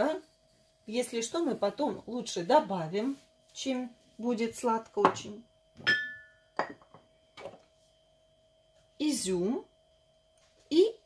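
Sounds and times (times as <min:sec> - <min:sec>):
kitchenware knocking on table: 0:05.0 - 0:07.6.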